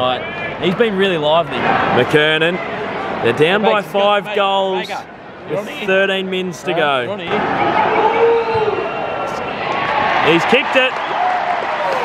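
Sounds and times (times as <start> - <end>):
stadium crowd shouting: 0.0 - 4.2, 7.2 - 12.0.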